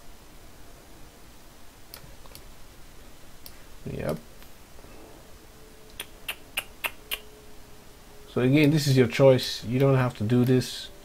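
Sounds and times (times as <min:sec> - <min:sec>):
faint steady hum: 0:00.0 - 0:11.0
computer mouse clicks: 0:01.9 - 0:02.5.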